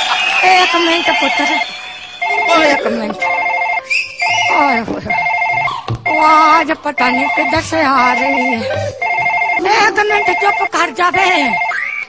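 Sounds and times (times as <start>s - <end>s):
woman talking: 0.4s - 1.7s, 2.4s - 3.4s, 4.5s - 5.2s, 6.1s - 9.0s, 9.6s - 11.7s
phone ringtone trilling: 1.0s - 3.9s, 4.5s - 12.0s.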